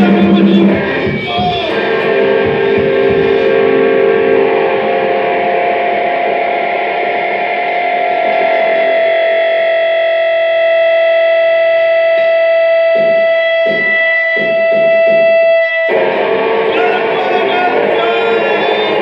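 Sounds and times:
distorted electric guitar: 0:00.0 - 0:19.0.

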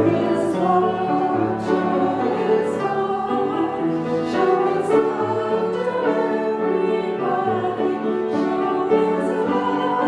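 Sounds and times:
instrumental accompaniment: 0:00.0 - 0:10.0
two people singing worship song: 0:00.0 - 0:10.0.

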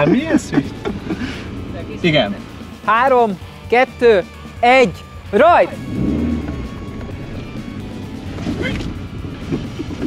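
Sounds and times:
car engine from inside cabin: 0:00.0 - 0:03.4, 0:05.8 - 0:10.0
background music: 0:00.0 - 0:10.0.

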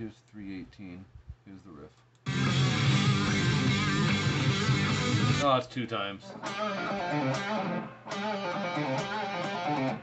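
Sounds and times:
electric guitar rock riff: 0:02.2 - 0:05.4, 0:06.3 - 0:10.0.

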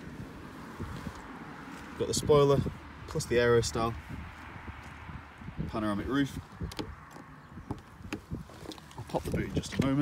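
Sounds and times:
footsteps crunching on gravel: 0:00.6 - 0:02.1, 0:06.3 - 0:10.0.

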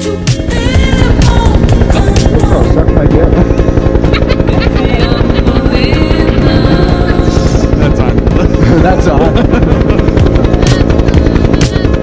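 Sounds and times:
helicopter rotor throbbing: 0:00.0 - 0:12.0.

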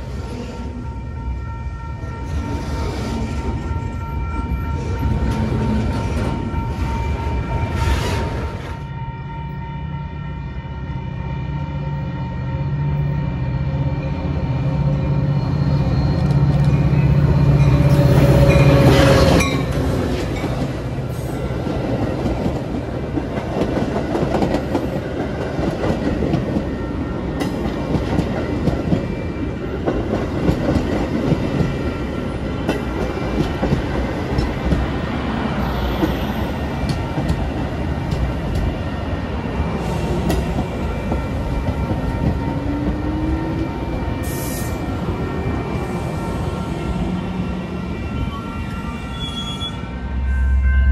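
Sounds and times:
diesel locomotive engine drone: 0:00.0 - 0:50.9
train wheels clattering on rails: 0:21.6 - 0:38.9, 0:39.8 - 0:43.6.

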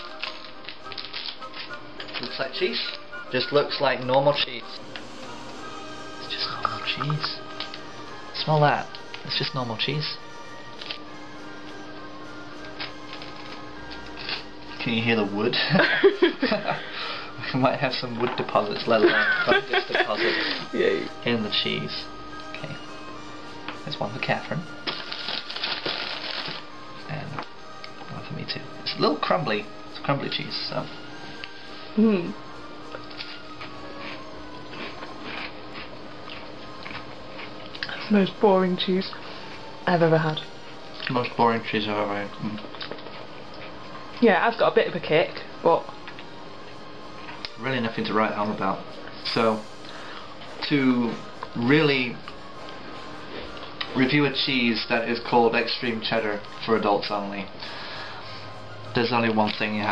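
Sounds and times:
plastic packaging crinkling: 0:00.0 - 0:03.0, 0:12.6 - 0:14.5, 0:24.8 - 0:26.7
steady background hum: 0:00.0 - 0:59.9.

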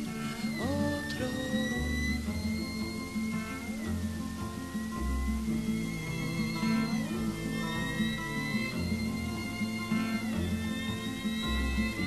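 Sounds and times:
high sliding melody line: 0:00.0 - 0:12.0
low bass notes: 0:00.0 - 0:12.0
plucked string figure: 0:00.0 - 0:12.0.

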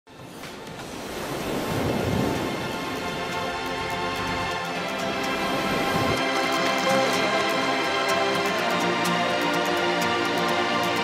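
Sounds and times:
ocean waves breaking: 0:00.1 - 0:11.0.

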